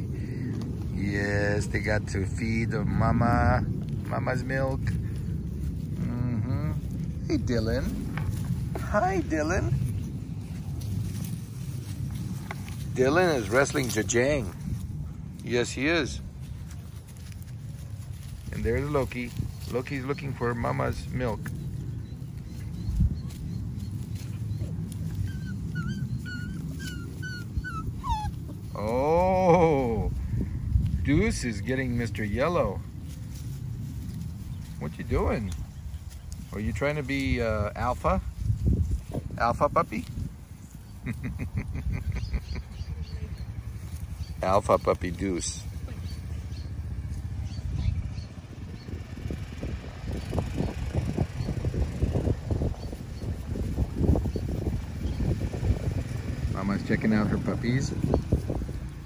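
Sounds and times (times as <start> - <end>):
breeze rumble on microphone: 0.0 - 59.0
puppies whimpering: 22.0 - 29.0.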